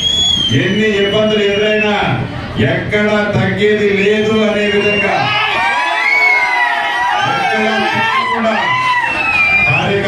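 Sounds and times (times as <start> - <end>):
crowd cheering and shouting: 4.6 - 10.0.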